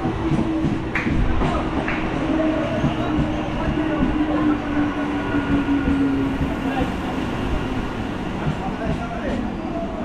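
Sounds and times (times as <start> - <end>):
train hum and rumble: 0.0 - 10.0.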